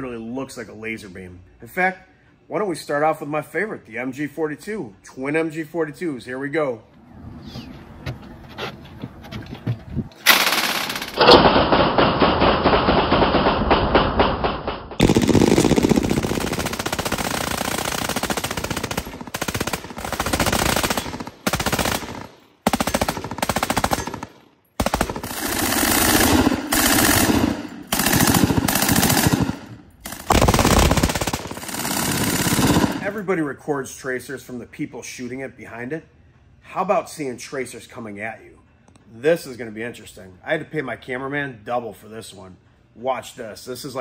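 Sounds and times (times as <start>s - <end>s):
machine gun automatic fire: 10.3s - 33.1s.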